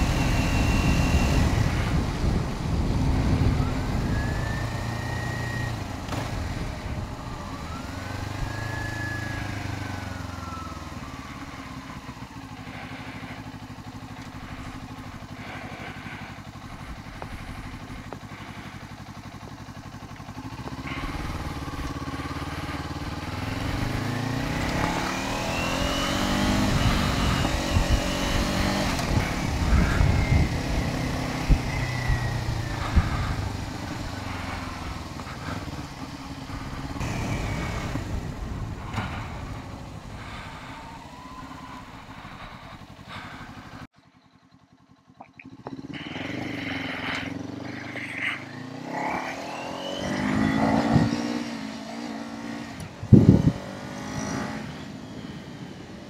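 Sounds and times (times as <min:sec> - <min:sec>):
wind buffeting microphone: 0:00.0 - 0:05.0, 0:23.0 - 0:43.3, 0:52.8 - 0:54.2
motorcycle engine revving: 0:00.0 - 0:56.0.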